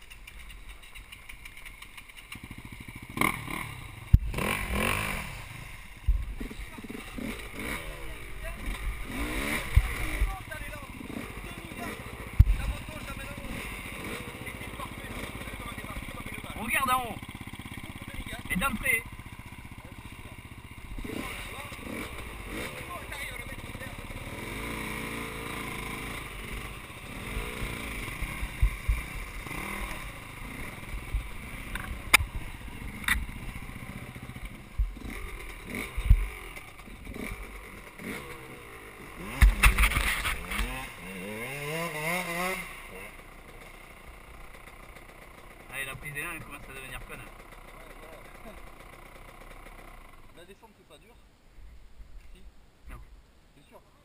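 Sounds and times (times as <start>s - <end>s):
motorcycle engine revving: 0.0s - 50.6s
motorcycle engines running: 0.0s - 51.2s.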